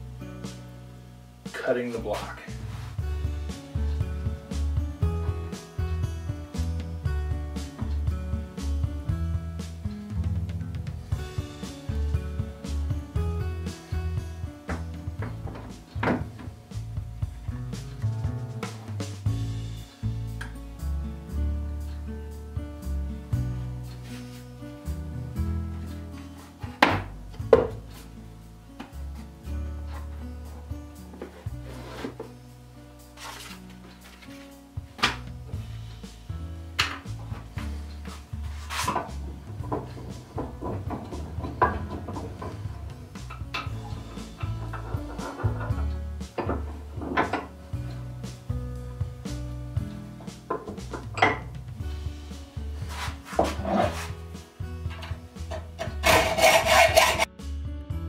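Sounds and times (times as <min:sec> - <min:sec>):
background music: 0:00.0 - 0:58.0
metal block knocking in vise: 0:38.9 - 0:47.5
hacksaw cutting metal: 0:54.9 - 0:57.3.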